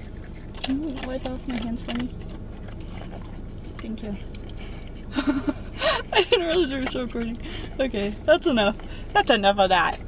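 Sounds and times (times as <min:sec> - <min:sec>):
steady low hum: 0:00.0 - 0:10.0
woman laughing breathily: 0:05.1 - 0:06.5.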